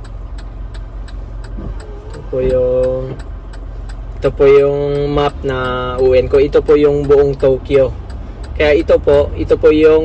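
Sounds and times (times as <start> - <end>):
truck engine idling: 0.0 - 10.0
turn signal ticking: 0.0 - 10.0.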